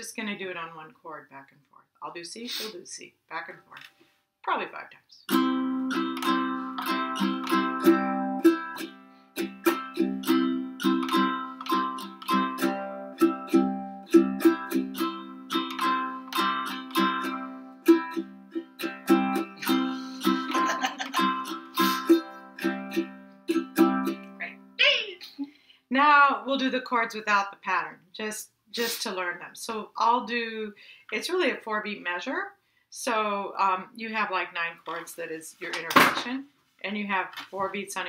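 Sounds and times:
person speaking: 0:00.0 - 0:03.9, 0:19.6 - 0:22.2, 0:24.4 - 0:30.4
ukuleles strumming: 0:05.3 - 0:24.7.

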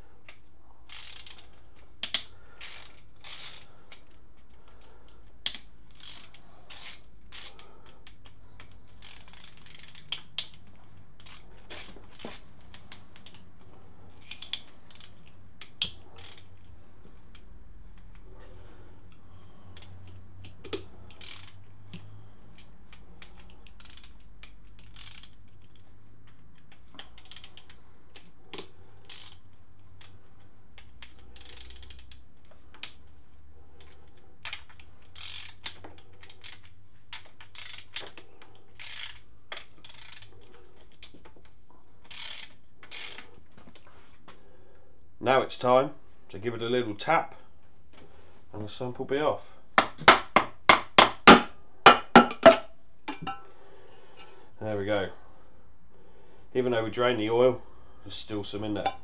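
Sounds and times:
socket ratchet clicking: 0:00.9 - 0:04.1, 0:05.4 - 0:12.4, 0:14.2 - 0:16.6, 0:19.7 - 0:25.8, 0:26.4 - 0:30.2, 0:30.9 - 0:32.3, 0:34.5 - 0:38.1.

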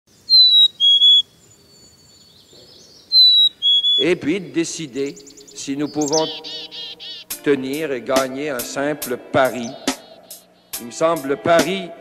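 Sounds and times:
bird whistling two-note song: 0:00.3 - 0:01.3, 0:03.1 - 0:04.1, 0:05.1 - 0:07.4, 0:09.4 - 0:10.8.

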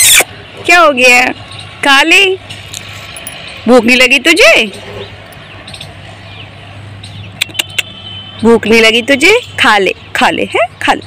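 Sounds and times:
low outdoor background hum: 0:00.0 - 0:11.0.

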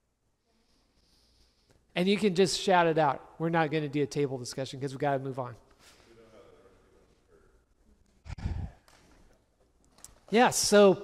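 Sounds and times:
short breath or sigh: 0:08.3 - 0:08.8.

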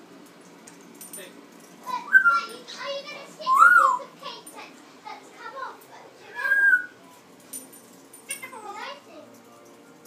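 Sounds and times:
parrot speech-like chatter: 0:01.8 - 0:07.1, 0:08.3 - 0:09.3
parrot whistling: 0:02.0 - 0:02.5, 0:03.4 - 0:04.1, 0:06.3 - 0:07.0.

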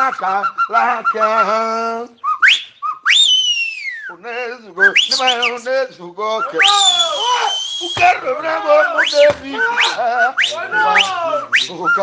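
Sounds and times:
man singing: 0:00.0 - 0:02.2, 0:04.1 - 0:07.2, 0:07.9 - 0:12.0
high whistle-like sliding tone: 0:02.3 - 0:04.1, 0:04.8 - 0:05.6, 0:06.4 - 0:12.0.

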